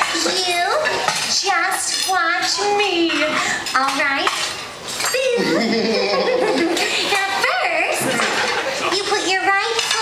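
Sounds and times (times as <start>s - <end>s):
dishes and cutlery clinking: 0.0s - 5.5s, 6.7s - 10.0s.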